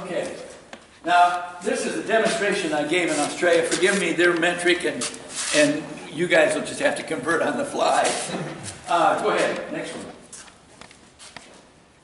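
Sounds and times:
person speaking: 0.0 - 10.3.

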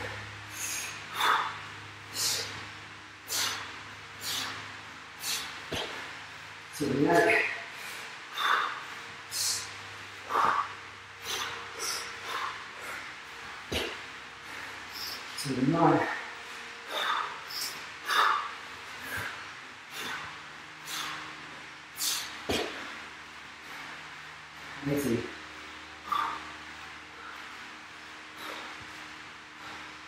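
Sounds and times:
man breathing hard: 0.0 - 24.8, 25.6 - 30.0.

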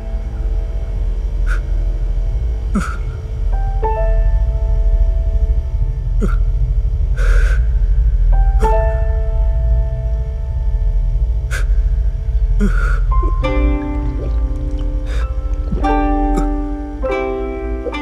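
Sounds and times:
deep drone with keyboard chords: 0.0 - 18.0
breath-like gasps: 7.2 - 7.8, 11.5 - 11.9, 12.6 - 13.1, 15.0 - 15.7.

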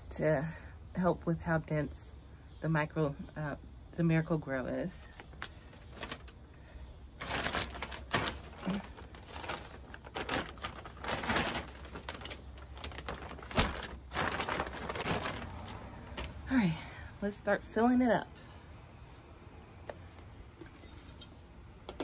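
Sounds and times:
plastic bags crinkling and rustling: 5.0 - 16.7.

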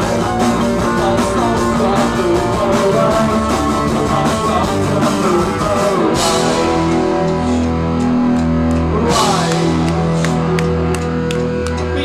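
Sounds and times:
bass guitar steady notes: 0.0 - 12.0
drum and cymbal hits: 0.0 - 12.0
electric guitar: 0.0 - 12.0.

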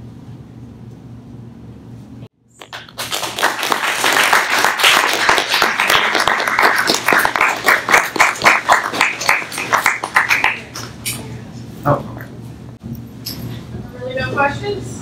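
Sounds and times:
audience applauding: 2.6 - 10.8.

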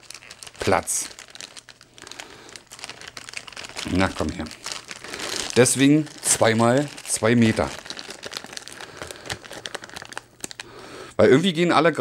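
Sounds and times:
packaging crinkling: 0.0 - 10.8.

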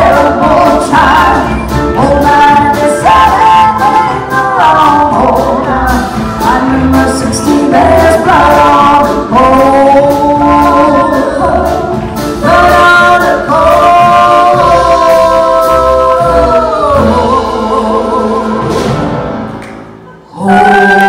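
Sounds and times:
women singing a duet: 0.0 - 19.1, 20.2 - 21.0
instrumental accompaniment: 0.0 - 21.0.

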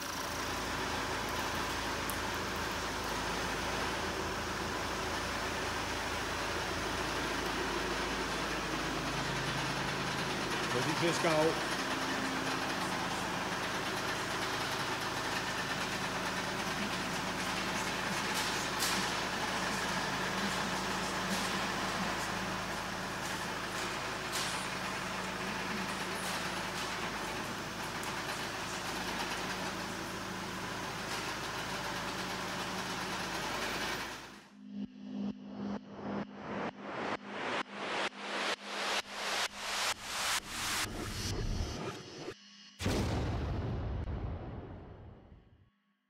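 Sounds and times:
diesel engine running: 0.0 - 41.9.

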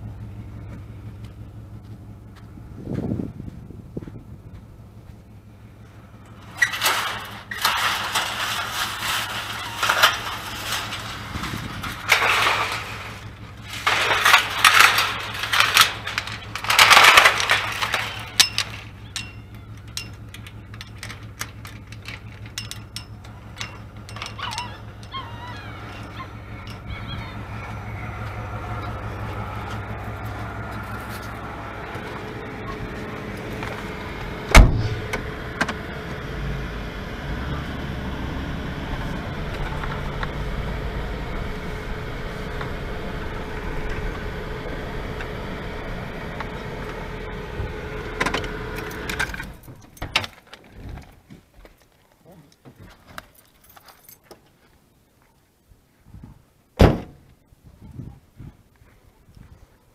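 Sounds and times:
van engine idling: 0.0 - 50.3
car door slamming: 33.8 - 35.8, 56.8 - 57.2
keys jangling: 53.2 - 54.3.

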